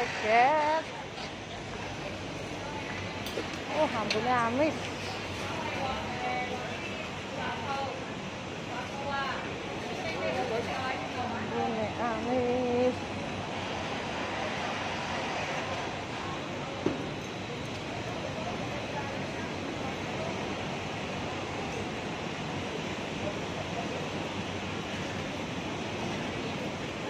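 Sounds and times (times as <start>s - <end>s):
road traffic rushing: 0.0s - 3.7s, 12.6s - 26.5s
passers-by talking: 0.0s - 27.0s.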